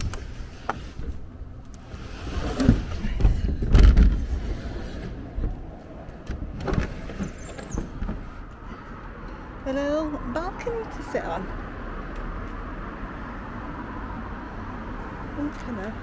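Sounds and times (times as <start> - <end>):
wooden window frame scraping: 0.0 - 8.9.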